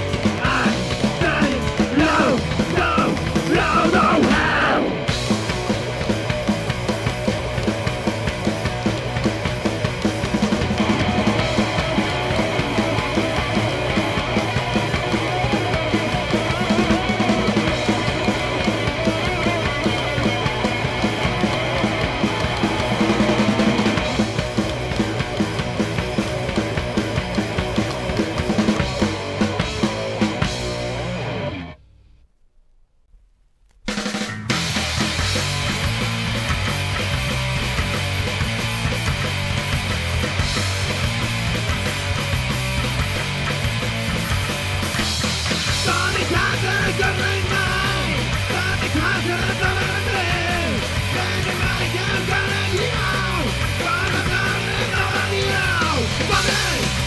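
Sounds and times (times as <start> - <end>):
psychobilly band playing: 0.0 - 31.8, 33.9 - 57.0
person singing: 0.4 - 5.0, 45.8 - 57.0.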